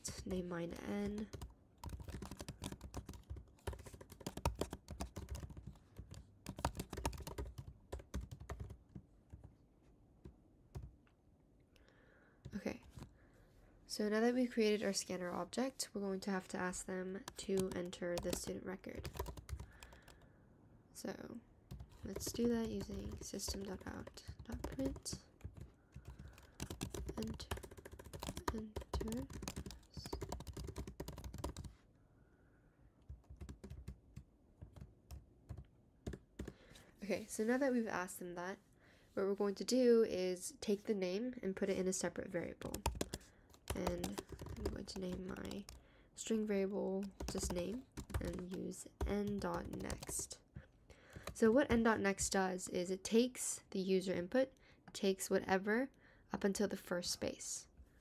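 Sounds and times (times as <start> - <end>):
computer keyboard typing: 0.0 - 9.5, 17.2 - 20.2, 21.7 - 31.7, 33.1 - 36.6, 42.4 - 50.4.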